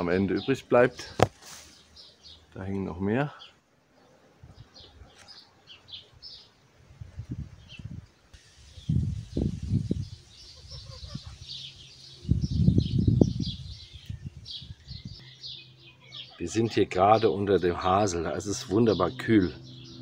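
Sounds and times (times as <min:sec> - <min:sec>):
small birds chirping: 0:00.0 - 0:20.0.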